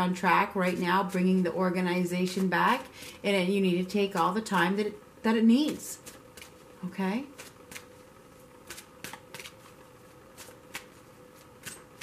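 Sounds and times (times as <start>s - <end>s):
faint steady hum: 0.0s - 12.0s
cards being shuffled: 7.3s - 8.0s, 8.6s - 12.0s.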